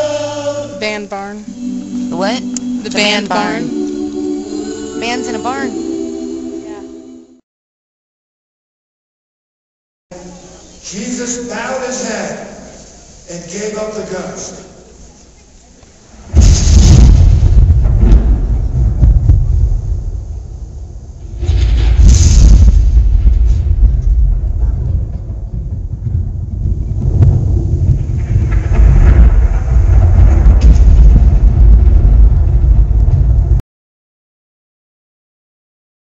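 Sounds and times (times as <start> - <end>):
deep rumbling sound effect: 16.2 - 33.6.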